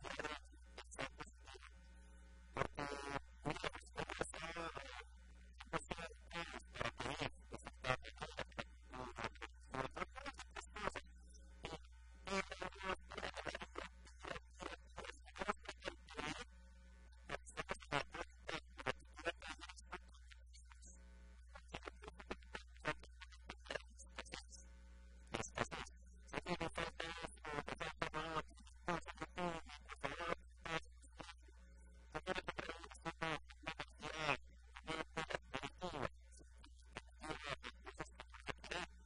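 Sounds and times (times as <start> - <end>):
low steady hum: 0.0 - 4.4, 5.0 - 17.7, 19.0 - 27.4, 29.6 - 32.2
steady low hum: 23.0 - 26.4.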